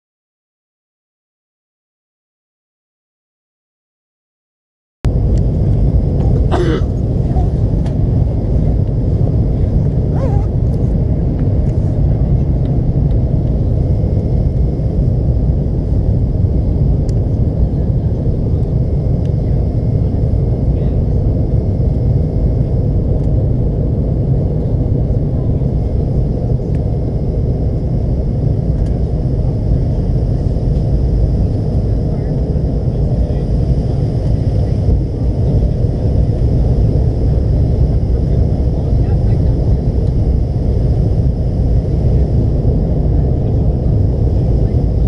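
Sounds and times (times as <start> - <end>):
airliner cabin low rumble: 5.1 - 45.0.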